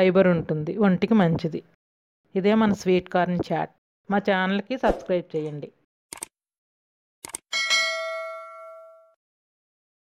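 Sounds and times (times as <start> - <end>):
notification bell ding: 7.6 - 9.2.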